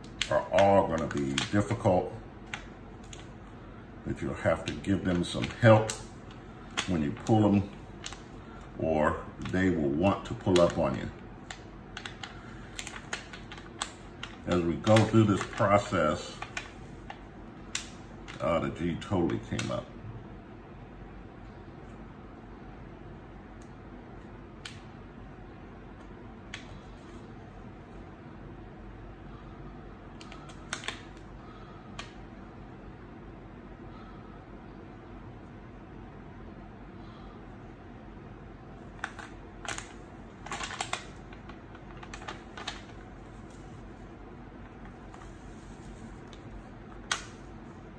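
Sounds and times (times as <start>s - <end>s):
plastic sheet clicking and crackling: 0.0s - 3.4s, 4.6s - 8.7s, 9.4s - 18.5s, 30.2s - 32.2s, 38.8s - 44.0s, 44.7s - 47.7s
steady low hum: 0.0s - 47.9s
plastic sheet peeling clicks: 30.2s - 31.2s, 38.9s - 43.7s, 45.1s - 47.5s.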